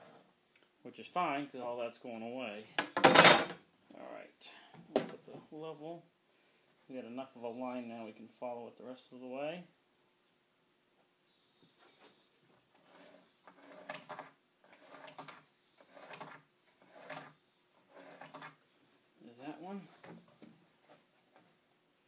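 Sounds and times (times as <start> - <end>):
pencil scratching on rough wood: 12.8 - 18.6.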